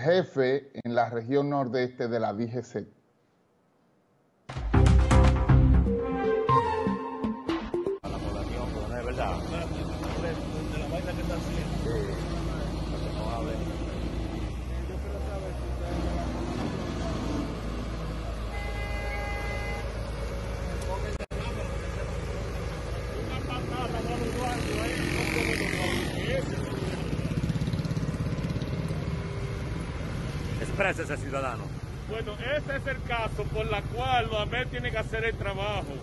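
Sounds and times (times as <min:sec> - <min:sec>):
vehicle engines rumbling: 0:08.0 - 0:36.0
car horn blast: 0:18.5 - 0:20.2.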